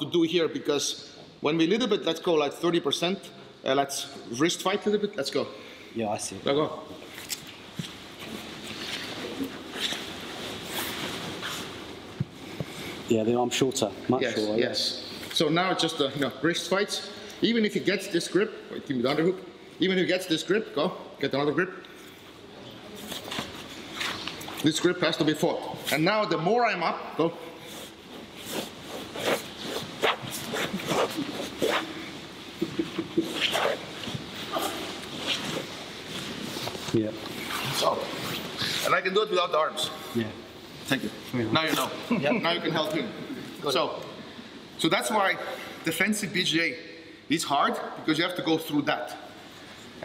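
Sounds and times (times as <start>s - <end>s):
fabric rustling and scraping: 7.0s - 13.1s, 27.7s - 32.6s, 33.2s - 38.9s.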